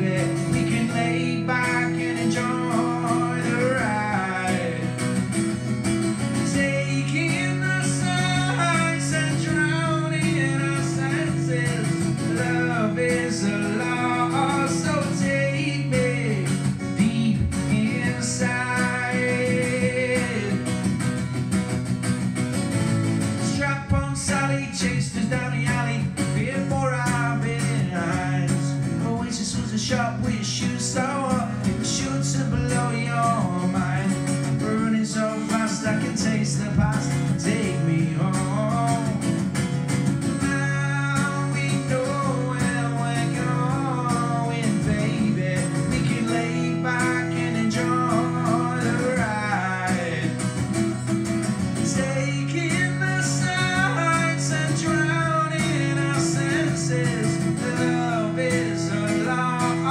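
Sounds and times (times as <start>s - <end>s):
man singing into a microphone: 0.0s - 21.2s, 23.2s - 59.9s
acoustic guitar strummed: 0.0s - 59.9s.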